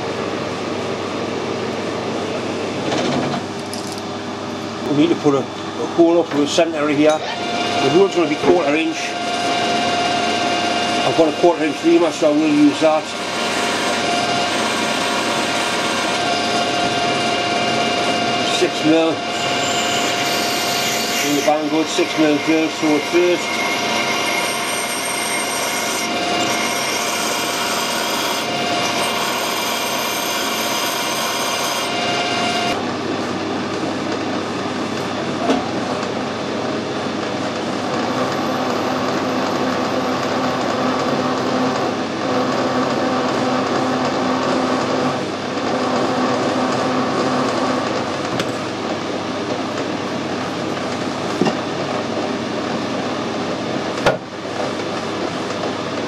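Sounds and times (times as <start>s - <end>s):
metal lathe drilling: 6.0s - 32.8s, 38.0s - 48.2s.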